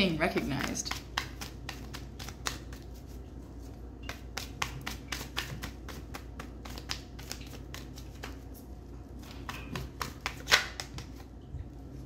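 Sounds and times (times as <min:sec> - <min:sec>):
cards being shuffled: 0:00.4 - 0:11.3.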